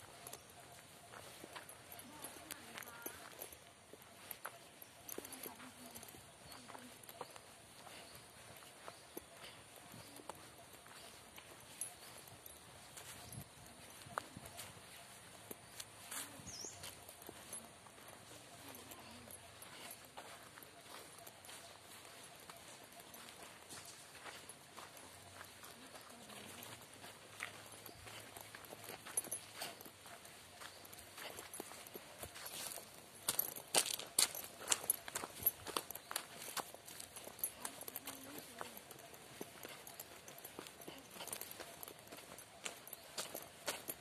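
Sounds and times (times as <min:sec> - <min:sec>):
footsteps on dry leaves: 0:21.6 - 0:44.0.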